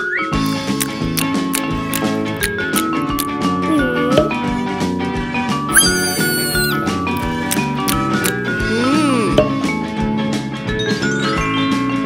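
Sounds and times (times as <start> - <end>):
cartoon cat voice meowing: 3.7 - 4.4, 5.7 - 7.0, 8.6 - 9.5
cheerful cartoon music: 5.7 - 9.7.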